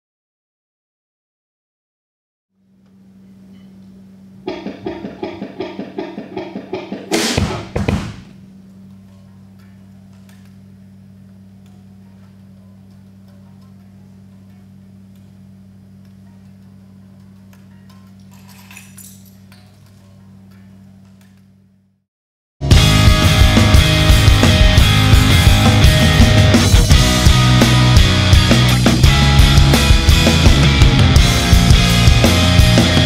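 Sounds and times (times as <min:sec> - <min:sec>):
steady low hum: 0:02.6 - 0:17.6
rapid clicking strikes: 0:04.5 - 0:08.4.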